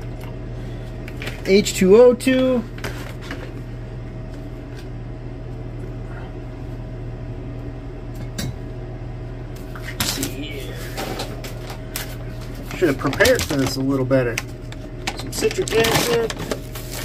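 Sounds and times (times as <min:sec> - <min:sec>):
electrical hum with whine: 0:00.0 - 0:17.0.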